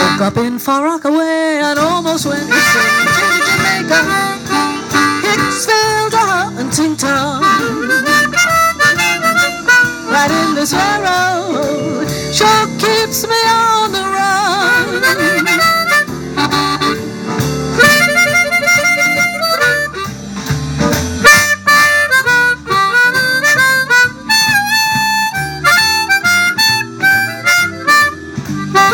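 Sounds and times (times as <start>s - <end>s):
harmonica solo: 0.0s - 0.7s, 2.1s - 28.9s
live band playing blues: 0.0s - 28.9s.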